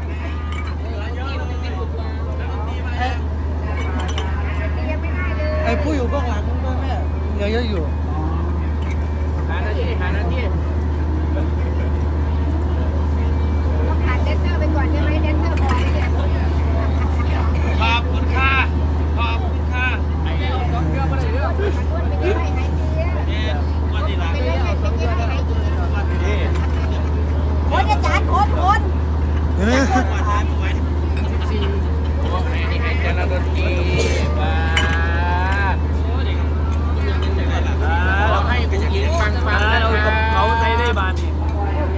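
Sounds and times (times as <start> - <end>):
diesel generator humming: 0.0 - 41.9
people's voices: 0.0 - 41.9.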